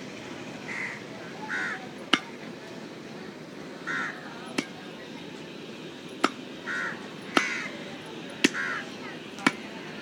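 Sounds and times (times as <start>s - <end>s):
crow cawing: 0.7s - 1.8s, 3.8s - 4.2s, 6.6s - 7.8s, 8.5s - 8.9s.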